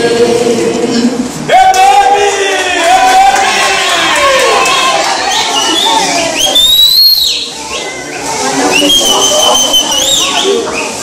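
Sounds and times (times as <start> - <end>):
shrill whistling: 5.2 - 11.0.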